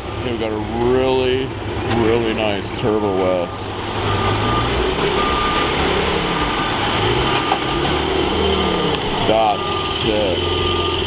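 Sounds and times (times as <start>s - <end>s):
vehicles idling: 0.0s - 11.0s
intermittent high beep: 2.8s - 11.0s.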